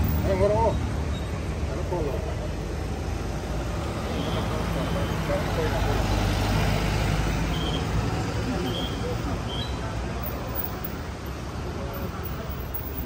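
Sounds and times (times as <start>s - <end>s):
passing vehicle engines: 0.0s - 13.0s.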